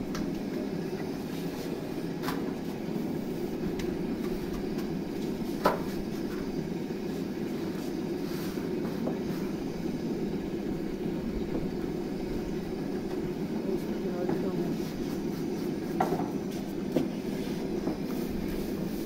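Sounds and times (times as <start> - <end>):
gas burner roar: 0.0 - 19.0.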